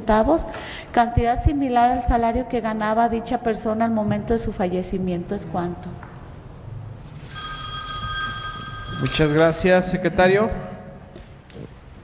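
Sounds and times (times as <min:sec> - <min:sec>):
steady electronic ringing tone: 0:07.2 - 0:10.0.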